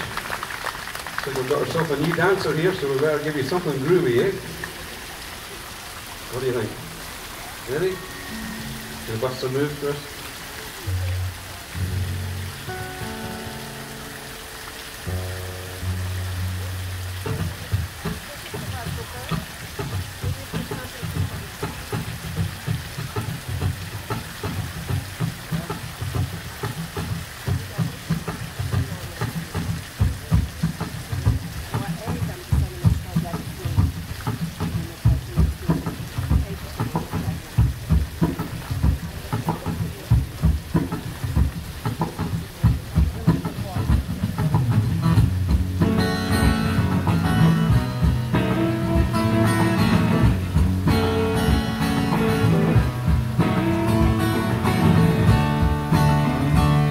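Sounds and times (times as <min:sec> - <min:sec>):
strummed guitars: 0:01.3 - 0:05.0, 0:06.3 - 0:56.9.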